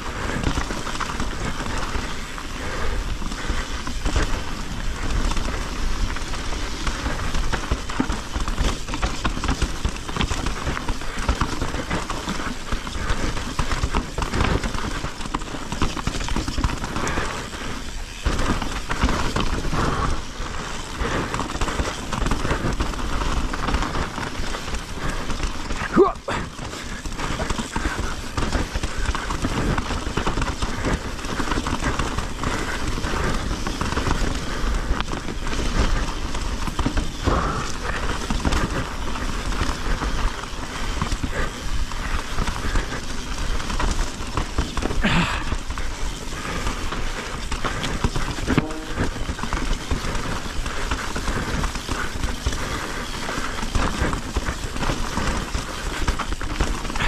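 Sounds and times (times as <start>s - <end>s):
bike rattling: 0.0s - 57.0s
bike tyres crunching over rocks: 0.0s - 57.0s.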